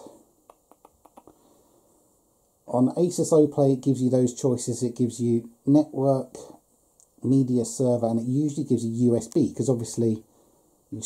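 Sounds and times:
faint sharp clicks: 0.4s - 1.4s.

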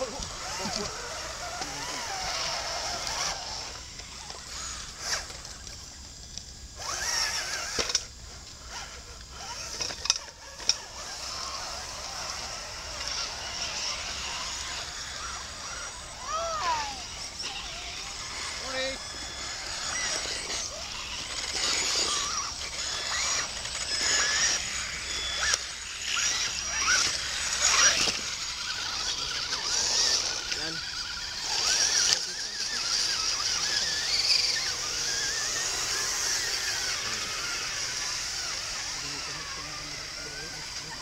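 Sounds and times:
people talking: 0.0s - 3.4s, 14.4s - 19.1s, 28.8s - 36.0s, 36.6s - 37.8s, 38.9s - 41.0s
small electric motors running: 0.0s - 41.0s.

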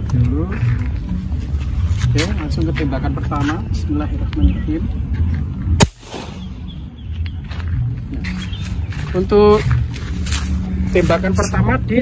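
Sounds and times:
air rifle shot: 5.8s - 6.8s.

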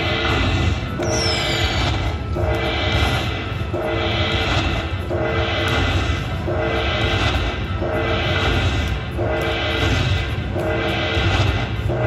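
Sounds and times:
steady low rumble: 0.0s - 12.0s
slot machine jingle: 1.0s - 2.3s.

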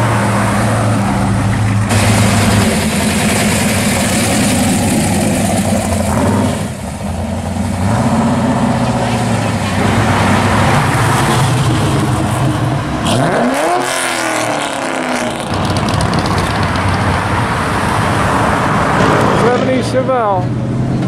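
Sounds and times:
car engines pulling away: 0.0s - 21.0s.

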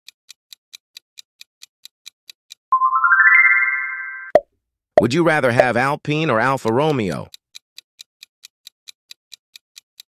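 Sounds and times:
rising bell-like electronic notes: 2.8s - 4.4s.

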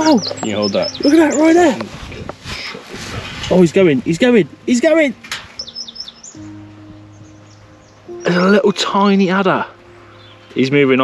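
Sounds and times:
held low chord music: 0.0s - 11.0s.

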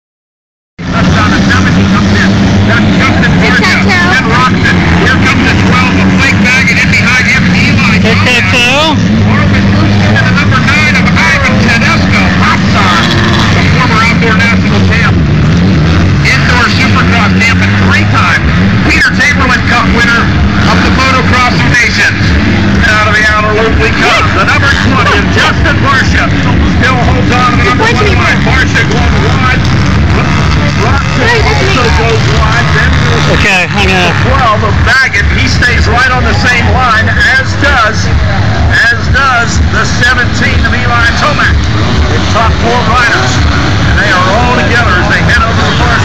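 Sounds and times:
dirt bike engines revving: 0.8s - 46.0s
people's voices: 0.8s - 46.0s.

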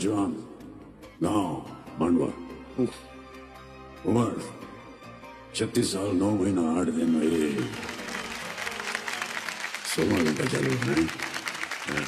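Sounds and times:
faint background music: 0.0s - 12.0s
studio audience applauding: 7.1s - 12.0s.

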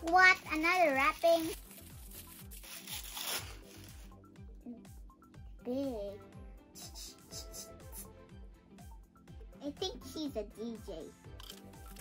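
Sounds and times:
soft background music: 0.0s - 12.0s
tissue paper crinkling: 0.6s - 4.2s.

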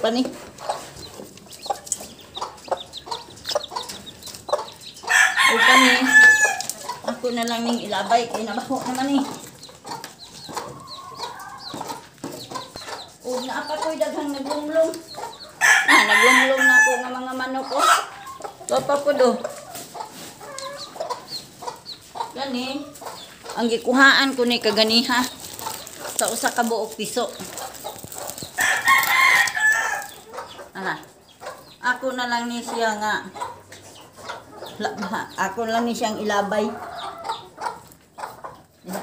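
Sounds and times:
chicks peeping: 0.0s - 39.0s
adult chicken calling loudly: 5.0s - 6.7s, 15.2s - 18.5s, 28.5s - 30.9s.

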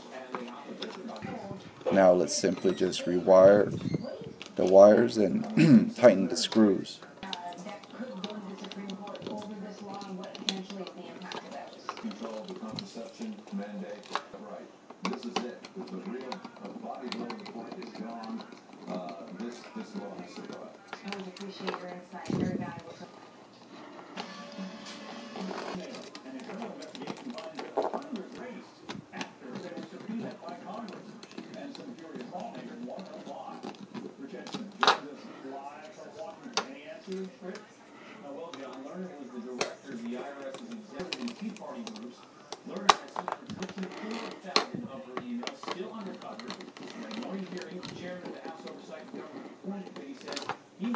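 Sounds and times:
television talk with music: 0.0s - 50.9s.

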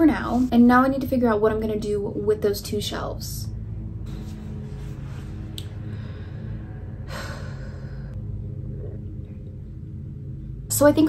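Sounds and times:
low room hum: 0.0s - 11.0s
breathy sigh: 5.8s - 8.2s.

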